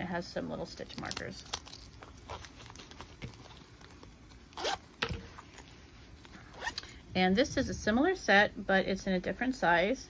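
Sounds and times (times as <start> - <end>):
handling noises: 0.8 - 7.0
zipper rasp: 4.5 - 5.7, 6.3 - 7.0.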